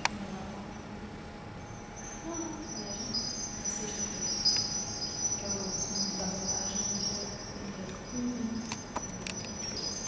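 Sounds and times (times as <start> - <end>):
faint low hums: 0.0 - 10.0.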